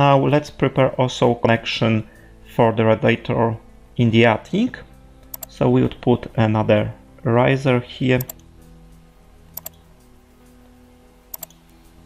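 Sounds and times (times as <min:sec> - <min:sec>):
person speaking: 0:00.0 - 0:08.4
computer mouse double-clicking: 0:05.3 - 0:05.5, 0:09.6 - 0:09.8, 0:11.3 - 0:11.6.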